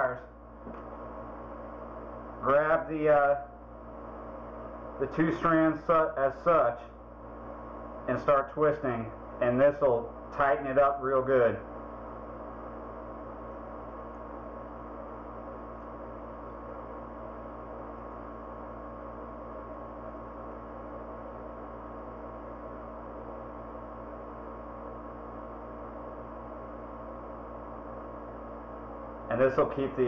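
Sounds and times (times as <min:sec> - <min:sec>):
steady hum of constant tones: 0:00.0 - 0:30.0.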